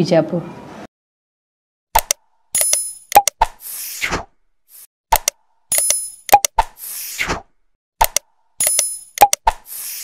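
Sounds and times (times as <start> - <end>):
mouse clicks and pops: 2.0 - 3.6, 5.1 - 6.8, 8.0 - 10.0
brief swish: 3.4 - 4.9, 6.6 - 7.5.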